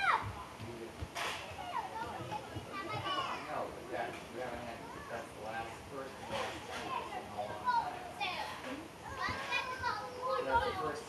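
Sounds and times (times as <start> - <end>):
children chattering and calling: 0.0 - 0.6, 1.4 - 4.0, 4.6 - 5.4, 6.3 - 11.0.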